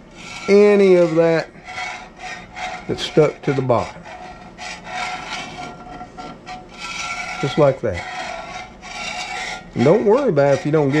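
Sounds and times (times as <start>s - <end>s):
metal spatula scraping skillet: 0.1s - 11.0s.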